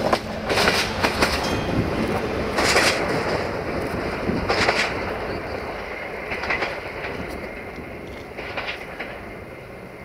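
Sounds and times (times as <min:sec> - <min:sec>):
wheels clicking over rail joints: 0:00.0 - 0:09.5
diesel railcar running: 0:00.0 - 0:10.0.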